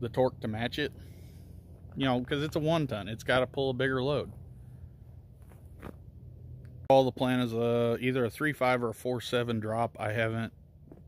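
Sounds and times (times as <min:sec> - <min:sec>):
man talking: 0:00.0 - 0:01.0, 0:01.9 - 0:04.3, 0:06.9 - 0:10.5
faint steady background noise: 0:00.0 - 0:11.0.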